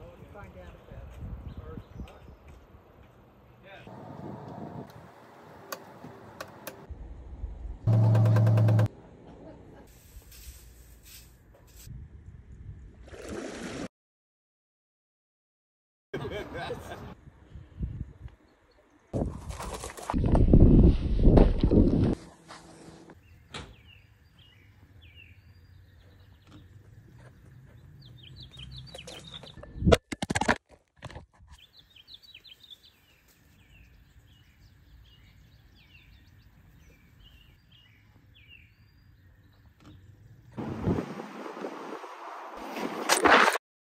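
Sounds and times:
wind on microphone: 1.0 - 2.4, 4.0 - 5.1, 17.2 - 18.4, 19.1 - 22.2, 40.6 - 42.2
small birds chirping: 23.2 - 29.9, 31.6 - 40.5.

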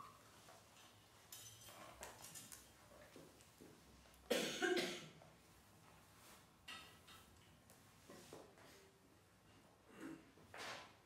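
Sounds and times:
person coughing: 4.3 - 5.2.

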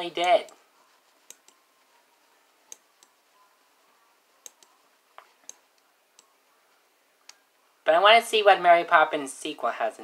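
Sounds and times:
computer mouse clicks: 1.3 - 1.6, 4.4 - 5.6.

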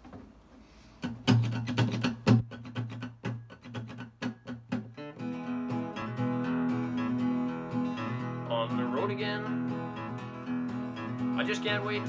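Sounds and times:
acoustic guitar strumming: 1.0 - 12.0.

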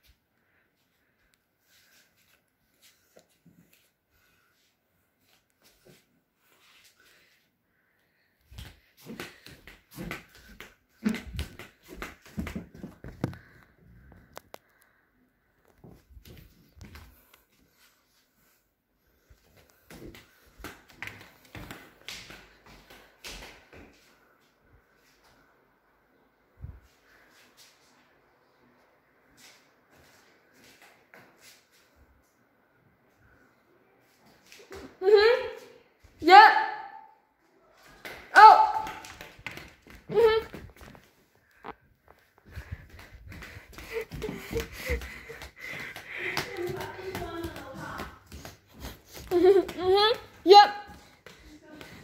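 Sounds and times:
footsteps on a hard floor: 8.5 - 14.3, 15.7 - 18.3, 19.2 - 24.1, 37.8 - 52.0.

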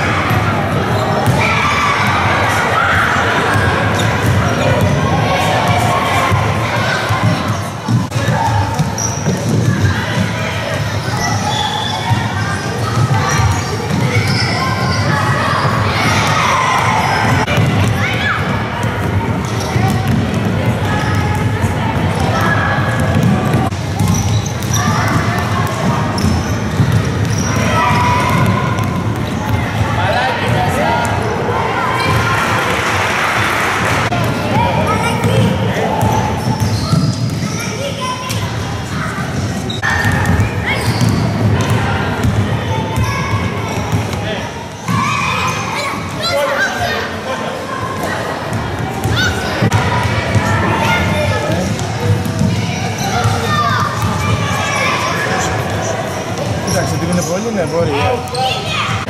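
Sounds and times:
basketballs bouncing on gym floor: 0.0 - 2.5, 3.3 - 32.4, 34.1 - 45.4, 48.0 - 54.9
children shouting and chattering: 0.0 - 59.0.

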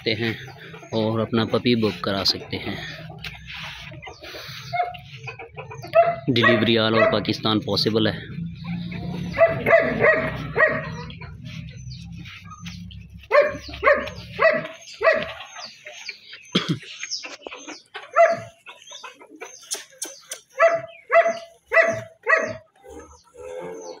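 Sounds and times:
puppies yipping: 0.0 - 24.0.

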